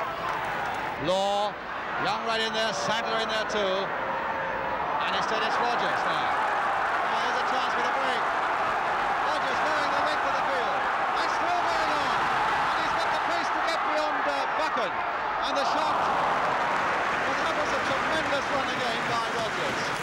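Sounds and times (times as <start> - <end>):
stadium crowd din: 0.0 - 20.0.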